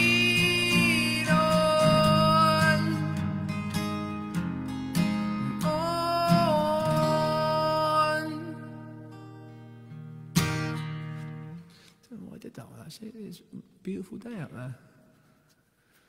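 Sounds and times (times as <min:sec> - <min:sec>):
man singing: 0:00.0 - 0:03.3, 0:05.2 - 0:09.1
strummed acoustic guitar: 0:00.0 - 0:12.0.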